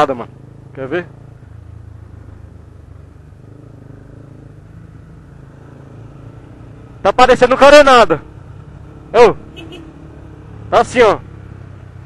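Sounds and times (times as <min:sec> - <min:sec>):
motorcycle engine running steadily: 0:00.0 - 0:12.0.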